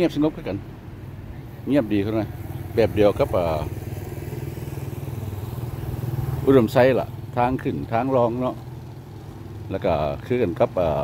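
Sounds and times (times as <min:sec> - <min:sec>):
man talking: 0:00.0 - 0:00.7, 0:01.6 - 0:03.8, 0:06.4 - 0:08.6, 0:09.7 - 0:11.0
small motorcycle engine running: 0:02.0 - 0:11.0.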